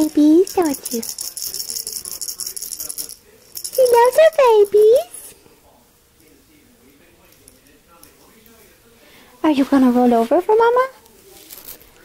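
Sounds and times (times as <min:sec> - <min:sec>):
plastic ball rattle shaken: 0:00.0 - 0:05.2.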